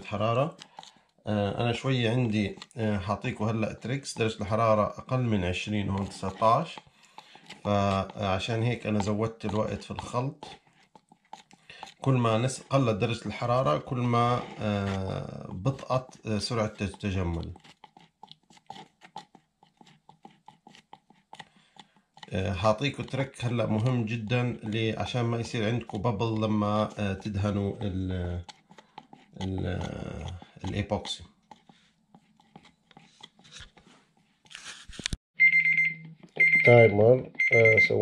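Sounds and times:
stir stick scraping plastic cup: 0:00.0 - 0:35.2
phone timer alarm tone: 0:35.4 - 0:38.0.

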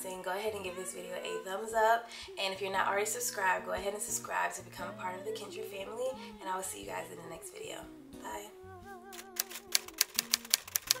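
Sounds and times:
soft music with held notes: 0:00.0 - 0:11.0
typewriter key clicks: 0:09.2 - 0:11.0.

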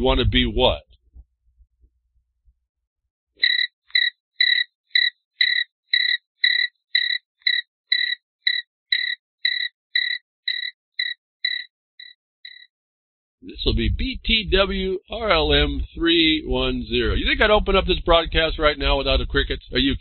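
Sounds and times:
crickets chirping: 0:03.4 - 0:12.7.

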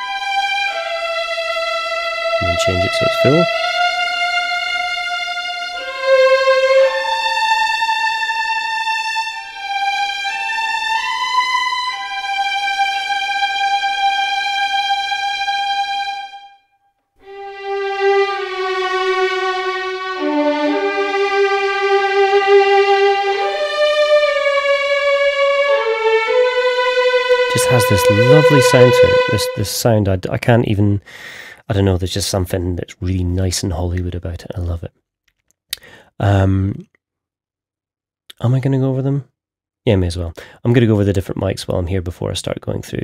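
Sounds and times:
violins playing slow legato melody: 0:00.0 - 0:16.5, 0:17.2 - 0:30.0.

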